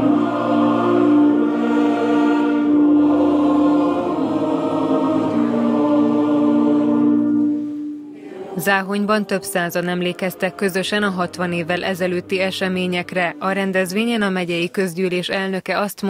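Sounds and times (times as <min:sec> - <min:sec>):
choir singing long chords: 0:00.0 - 0:14.0.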